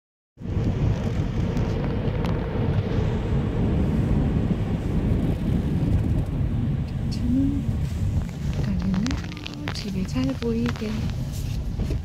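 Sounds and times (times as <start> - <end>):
road and tyre noise in car: 0.4 - 12.0.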